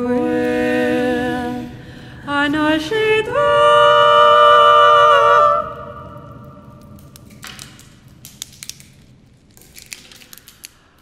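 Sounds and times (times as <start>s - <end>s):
women singing a cappella: 0.0s - 6.4s
twig cracking and rustling: 6.8s - 11.0s.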